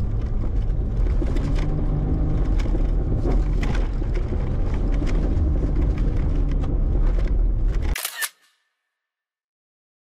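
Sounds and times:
off-road vehicle engine rumble: 0.0 - 8.0.

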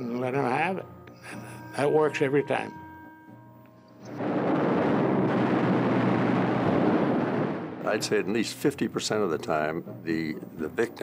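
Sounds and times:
machine-gun fire: 4.2 - 8.0.

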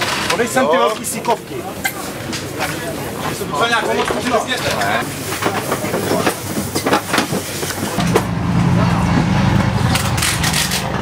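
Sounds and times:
knocks and clatter of work: 0.0 - 11.0
voices in background: 0.2 - 8.0
low motor drone: 8.0 - 11.0.

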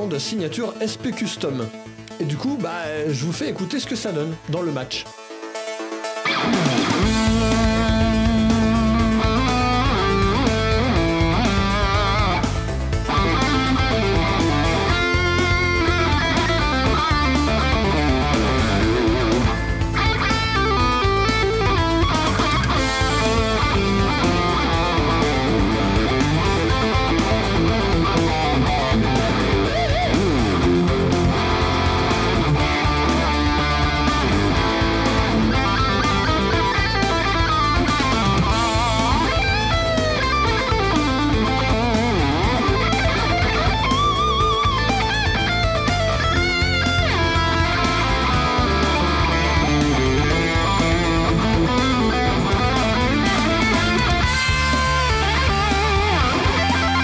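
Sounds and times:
electric guitar rock lead: 5.0 - 57.0
steady low notes: 7.0 - 57.0.

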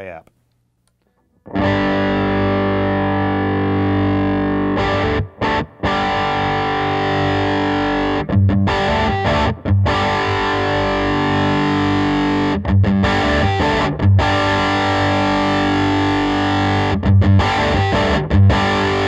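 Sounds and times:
distorted electric guitar chords: 1.4 - 19.0.

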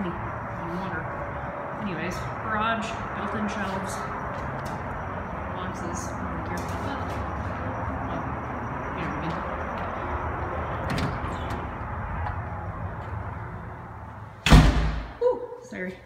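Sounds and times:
steady rumbling noise: 0.0 - 15.2
door shutting with thud: 14.4 - 15.1.

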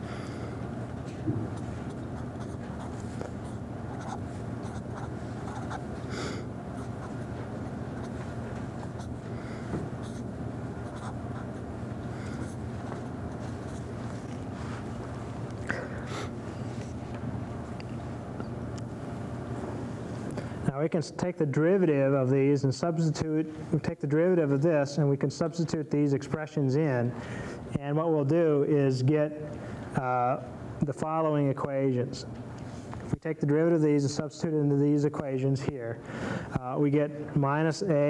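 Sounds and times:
low background hum: 0.0 - 38.0
marker scratching on paper: 1.5 - 5.9, 7.9 - 9.2, 10.0 - 11.6.

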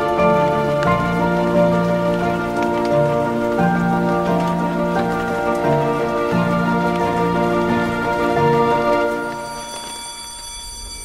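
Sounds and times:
gentle music of held chords: 0.0 - 11.0.

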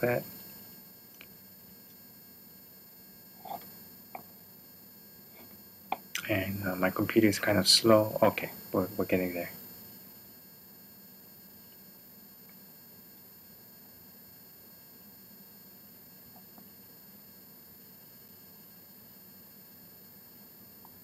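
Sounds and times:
low background hiss: 0.0 - 21.0.

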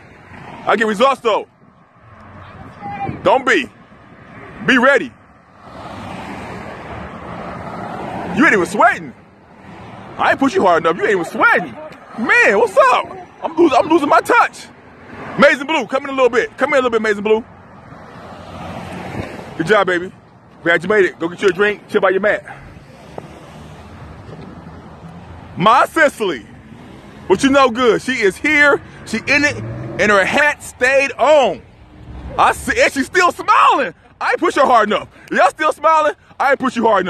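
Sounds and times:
passing vehicle engine and tyres: 0.0 - 37.0
road traffic going by: 0.0 - 37.0.

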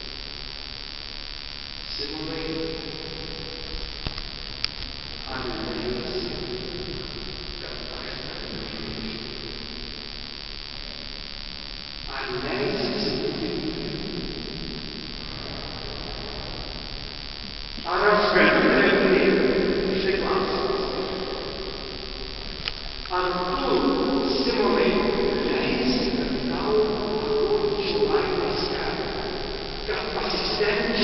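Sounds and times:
reverberant hall background noise: 0.0 - 31.0.

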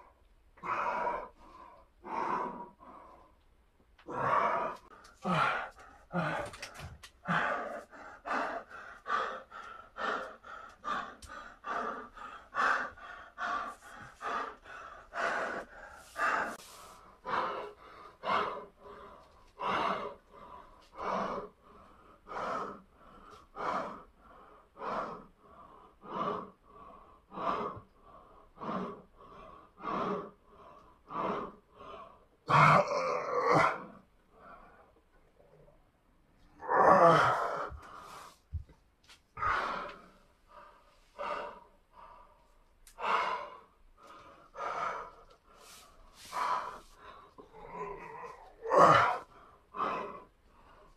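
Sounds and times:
man breathing hard: 0.0 - 32.6, 37.0 - 50.9.

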